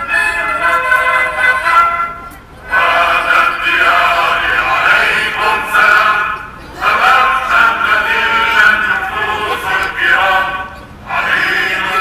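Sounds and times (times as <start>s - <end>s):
choir singing: 2.6s - 12.0s.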